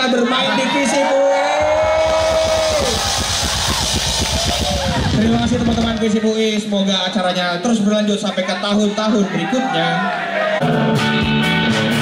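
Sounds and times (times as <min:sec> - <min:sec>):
drum and bass pulses: 0:01.6 - 0:06.2
live rock band playing: 0:10.6 - 0:12.0.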